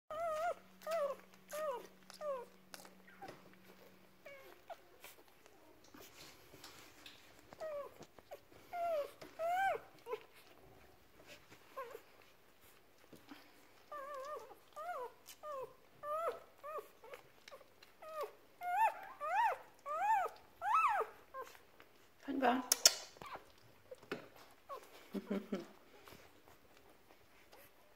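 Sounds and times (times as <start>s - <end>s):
puppies crying: 8.8s - 10.5s, 18.0s - 21.6s.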